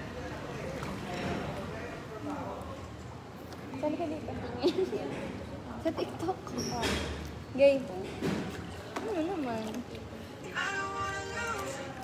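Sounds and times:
background music: 0:10.5 - 0:12.0.

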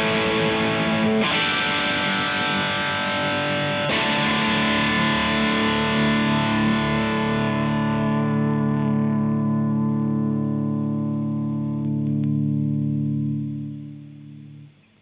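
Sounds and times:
overdriven electric guitar chord: 0:00.0 - 0:14.8.

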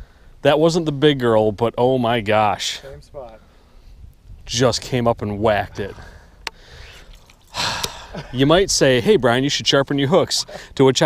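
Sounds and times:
man sighing loudly: 0:05.9 - 0:08.4.

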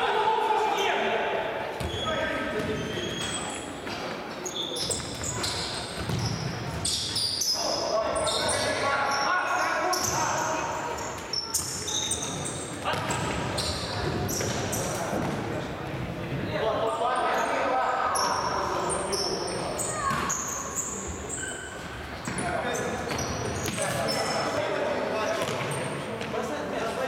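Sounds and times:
shoes squeaking on court floor: 0:01.8 - 0:15.4, 0:18.1 - 0:24.6, 0:25.2 - 0:26.4.

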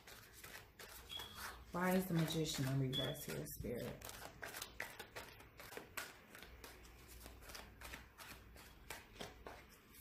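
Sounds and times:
cards being shuffled: 0:00.0 - 0:10.0.

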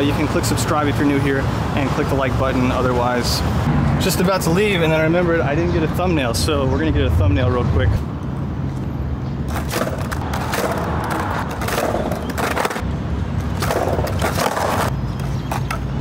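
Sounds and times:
skateboard clacking: 0:09.5 - 0:12.8, 0:13.5 - 0:14.9
skateboard wheels rolling on stone: 0:09.5 - 0:15.9.

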